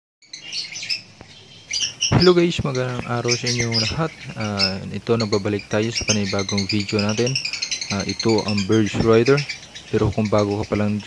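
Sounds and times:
lovebirds chirping: 0.2s - 11.0s.

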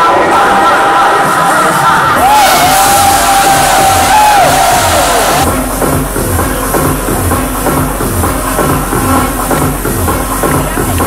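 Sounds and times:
crowd noise: 0.0s - 11.0s
electronic dance music: 0.0s - 11.0s
kick drum: 2.2s - 11.0s.

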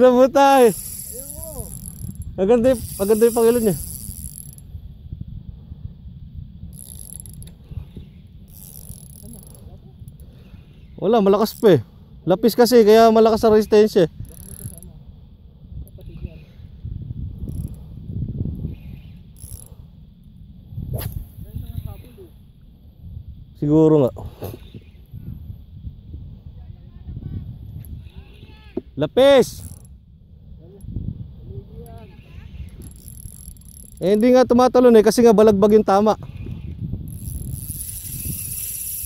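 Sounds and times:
fishing reel gears clicking: 0.0s - 4.8s, 6.6s - 10.4s, 11.2s - 11.8s, 12.5s - 14.9s, 17.4s - 17.9s, 18.6s - 20.4s, 29.3s - 30.0s, 31.8s - 39.0s.

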